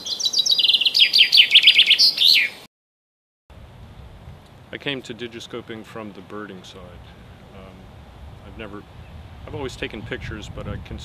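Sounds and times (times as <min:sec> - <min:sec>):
chaffinch singing: 0:00.0 - 0:02.7.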